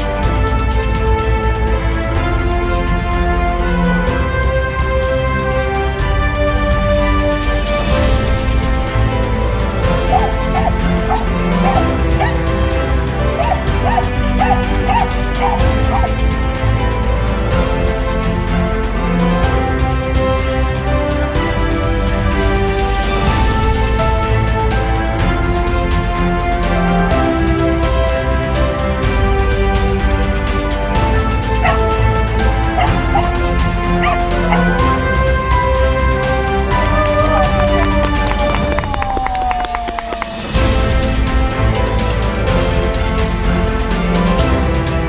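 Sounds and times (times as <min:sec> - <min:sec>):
background music: 0:00.0 - 0:45.0
dog barking: 0:10.1 - 0:12.4, 0:13.4 - 0:16.1, 0:31.6 - 0:32.0, 0:32.7 - 0:33.4, 0:34.0 - 0:34.8.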